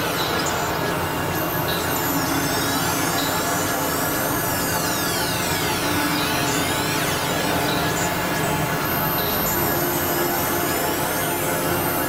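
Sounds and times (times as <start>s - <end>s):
noisy synthesizer drone with glides: 0.0s - 12.0s.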